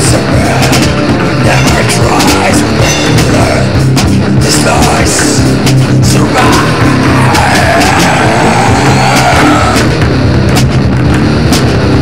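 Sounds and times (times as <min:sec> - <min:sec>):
heavy metal music: 0:00.0 - 0:12.0.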